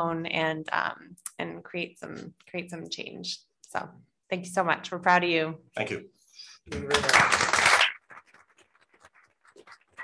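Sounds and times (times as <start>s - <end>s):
audience applause: 6.8s - 8.1s.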